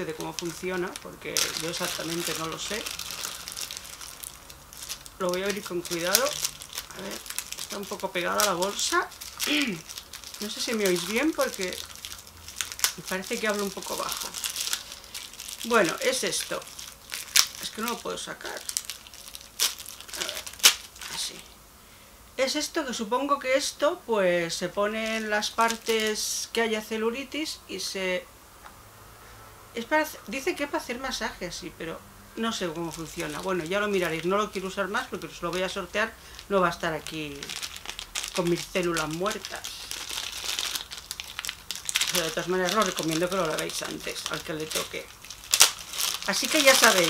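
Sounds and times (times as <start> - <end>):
plastic bag crinkling: 0.0 - 21.5, 24.6 - 26.5, 32.4 - 47.0.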